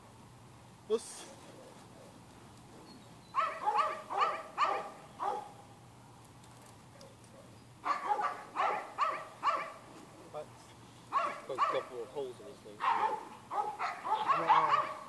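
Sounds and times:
dog barking: 0:03.4 - 0:05.6, 0:06.9 - 0:09.9, 0:11.1 - 0:12.0, 0:12.8 - 0:15.0.

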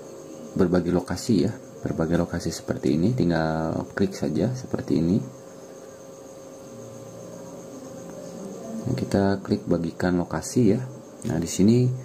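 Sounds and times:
faint even hum: 0:00.0 - 0:12.0.

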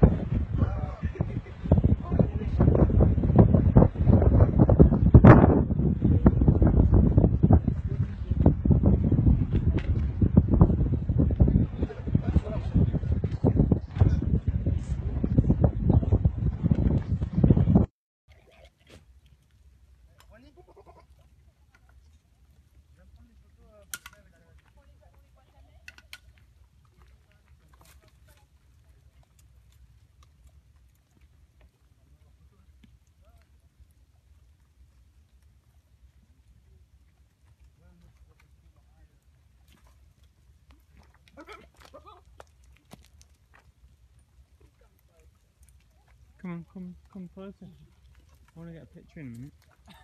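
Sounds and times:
goat bleating: 0:20.5 - 0:21.2.

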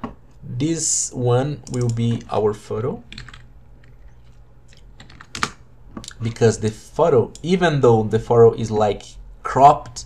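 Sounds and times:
computer keyboard typing: 0:03.1 - 0:04.0, 0:04.7 - 0:05.6.

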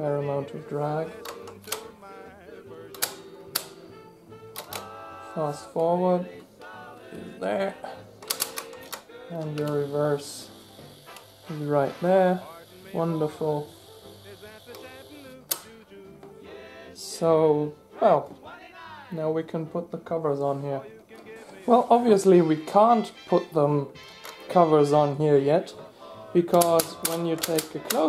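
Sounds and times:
tape recorder hum: 0:00.0 - 0:18.5
transport keys clacking: 0:00.8 - 0:02.2, 0:02.8 - 0:03.9, 0:04.5 - 0:10.4, 0:14.2 - 0:16.4, 0:26.4 - 0:28.0
control lever click: 0:08.2 - 0:09.7
tape recorder motor hum: 0:08.6 - 0:15.8.

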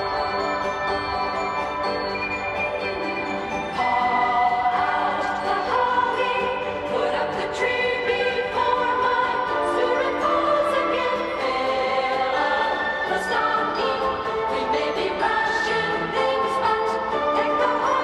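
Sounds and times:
choir singing: 0:03.8 - 0:18.0.

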